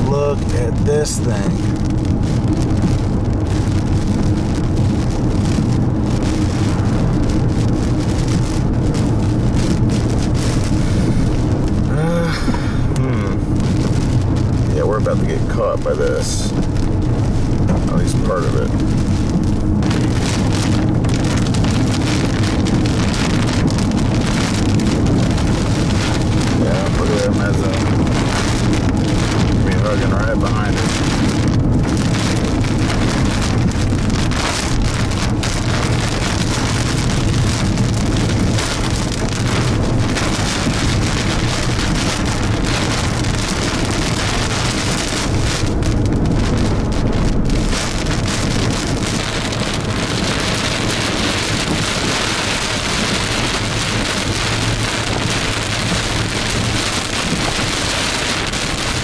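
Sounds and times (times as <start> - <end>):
car driving on wet road: 0.0 - 59.0
rain on car roof: 0.0 - 59.0.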